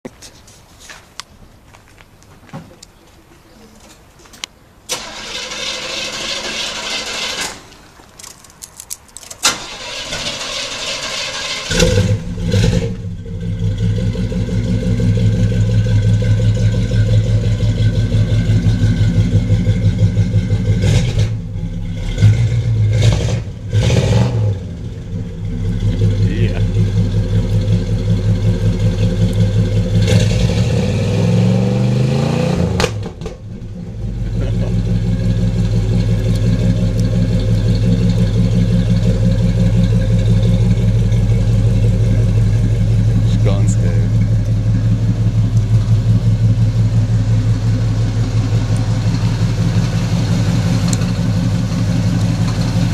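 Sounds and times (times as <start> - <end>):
engine throttle blips and revs: 4.9 - 8.3, 9.4 - 52.9
car engine idling: 9.4 - 30.4, 33.0 - 52.9.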